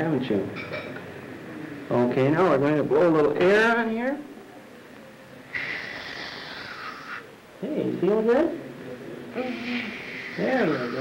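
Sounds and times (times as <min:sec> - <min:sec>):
air syringe hissing: 0:05.5 - 0:07.3.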